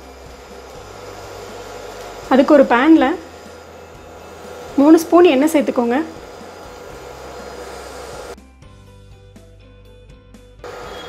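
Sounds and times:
induction cooktop whirring: 0.0s - 8.4s, 10.6s - 11.0s
multi-tone hum: 0.0s - 8.4s.

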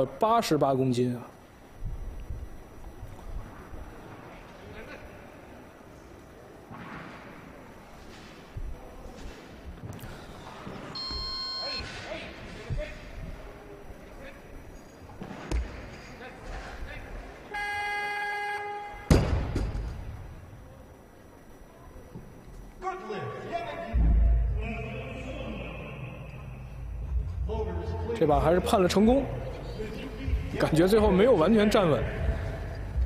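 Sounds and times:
buzzer: 10.9s - 12.0s, 17.5s - 19.6s
short electronic beep: 11.0s - 12.0s.

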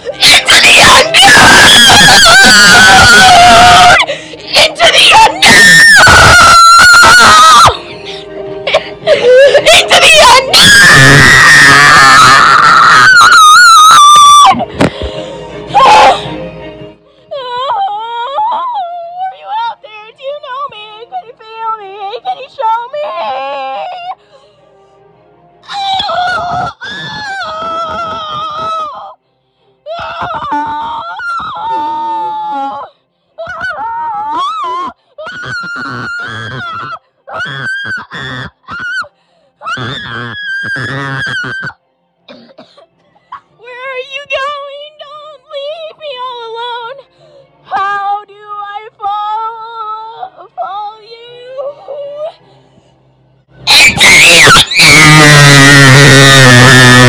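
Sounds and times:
boy screaming: 0.1s - 7.8s, 9.7s - 14.6s, 53.7s - 57.0s.

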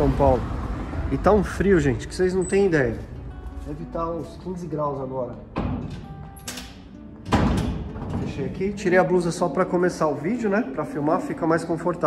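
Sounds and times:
background music: 0.0s - 12.0s
gate knock: 5.5s - 8.5s
gate closing thud: 5.5s - 8.6s.

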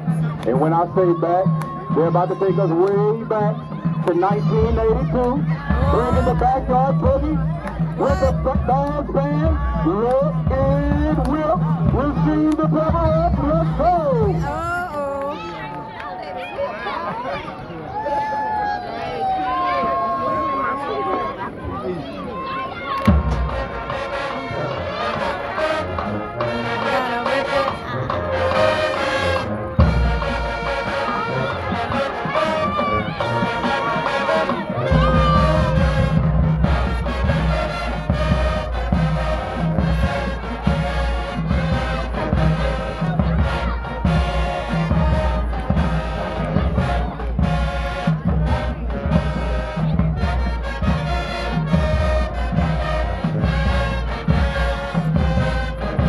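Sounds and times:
marching band playing: 0.0s - 17.4s, 19.2s - 56.0s
heavy low drum beat: 3.2s - 15.2s, 27.7s - 56.0s.

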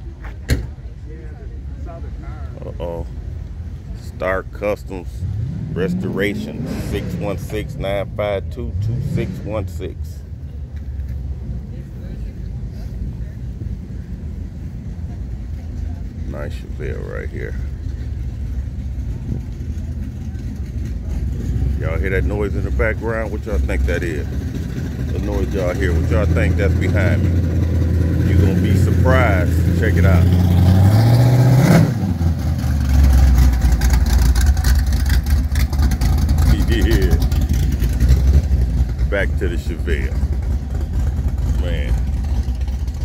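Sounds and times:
low rumble: 1.6s - 43.0s.

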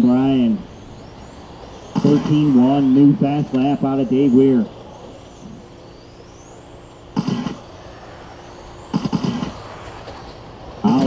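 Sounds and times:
electric toy car whines: 0.0s - 11.0s
steady low hum: 0.0s - 11.0s
short noise bursts: 0.9s - 3.4s, 4.7s - 11.0s.

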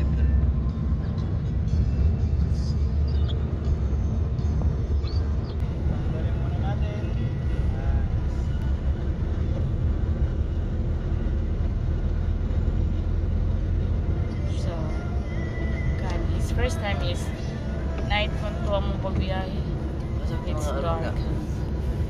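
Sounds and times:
music from car stereo: 0.0s - 6.4s
car engine and road rumble: 0.0s - 22.0s.

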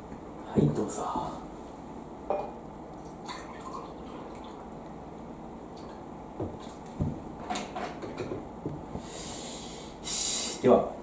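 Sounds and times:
person breathing: 8.9s - 10.6s.

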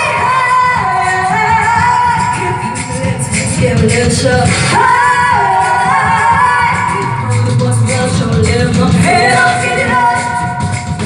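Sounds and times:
pop backing track with beat: 0.0s - 11.0s.

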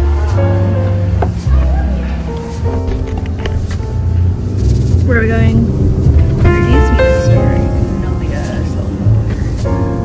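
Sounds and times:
car cabin rumble: 0.9s - 10.0s.

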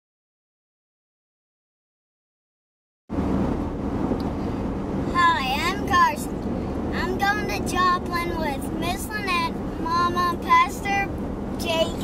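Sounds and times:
car cabin road noise: 3.1s - 12.0s.

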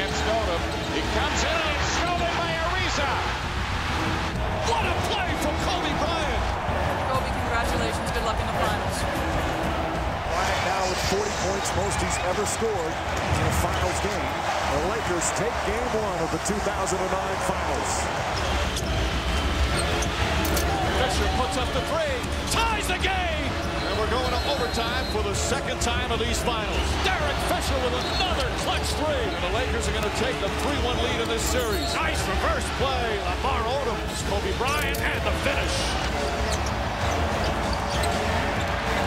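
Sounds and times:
arena crowd noise: 0.0s - 39.0s
sneakers squeaking: 18.2s - 20.9s, 36.0s - 39.0s.

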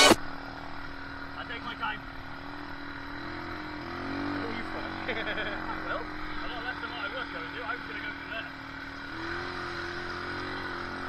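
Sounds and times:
atv engine idling: 0.2s - 11.0s.

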